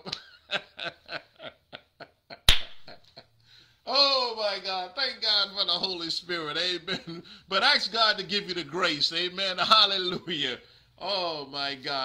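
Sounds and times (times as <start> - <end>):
man laughing under his breath: 0.0 - 4.2, 6.9 - 7.5
loud sharp smack: 2.5 - 2.9.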